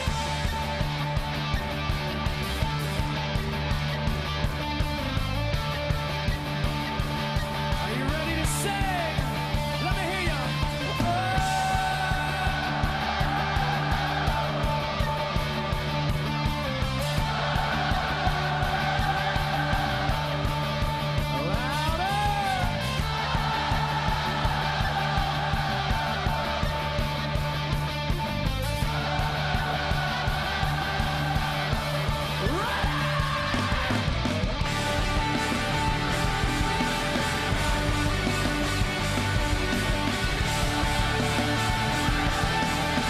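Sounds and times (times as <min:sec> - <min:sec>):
live rock band playing: 0:00.0 - 0:43.0.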